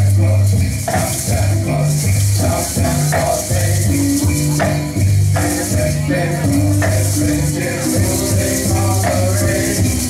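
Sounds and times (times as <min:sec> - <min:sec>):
gourd rattles shaken: 0:00.0 - 0:10.0
instrumental song with bass line: 0:00.0 - 0:10.0.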